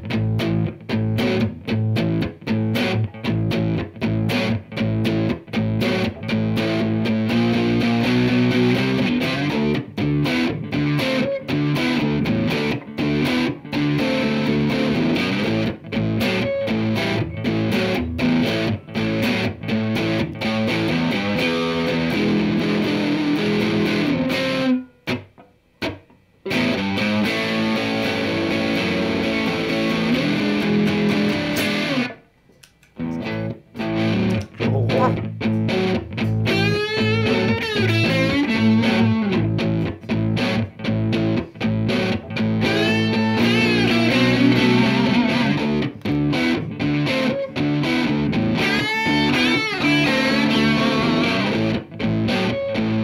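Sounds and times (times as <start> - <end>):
guitar lead with bent notes: 0.0 - 32.2, 32.9 - 53.0
distorted electric guitar chords: 0.0 - 32.3, 32.9 - 53.0.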